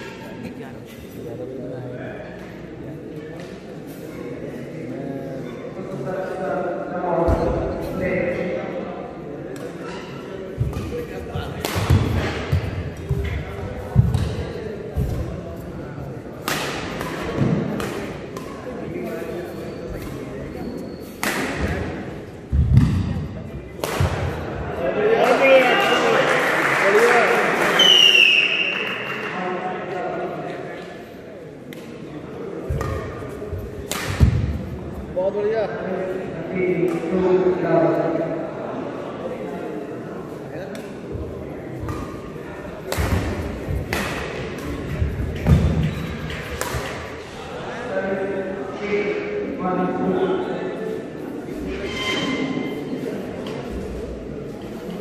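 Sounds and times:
racket striking shuttlecock: 11.6s - 12.6s, 23.8s - 24.3s, 33.8s - 34.5s.

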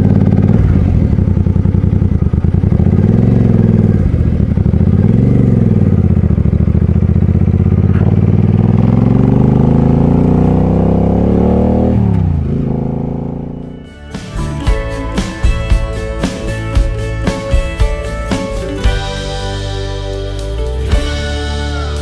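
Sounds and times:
motorcycle engine pulling away: 0.0s - 22.0s.

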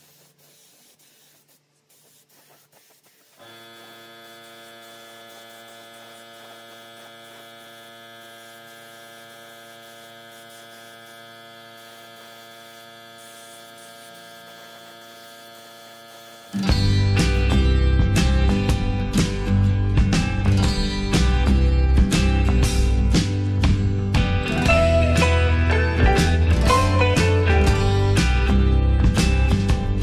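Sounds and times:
loud music: 22.0s - 30.0s.

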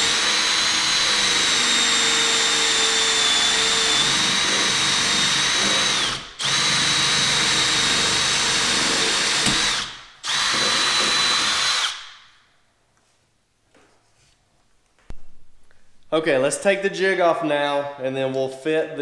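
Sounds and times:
cordless drill cutting wood: 0.0s - 12.2s.

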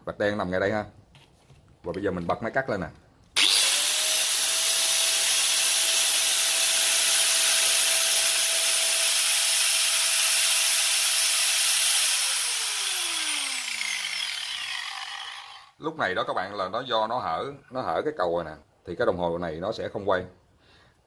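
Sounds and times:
electric motor whirring: 3.4s - 15.7s
electric motor winding down: 3.4s - 15.7s.

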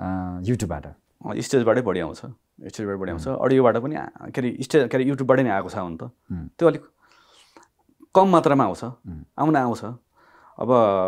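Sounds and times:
man speaking: 0.0s - 6.9s, 8.0s - 10.0s, 10.6s - 11.0s
soft breath: 7.0s - 7.7s, 10.1s - 10.6s.

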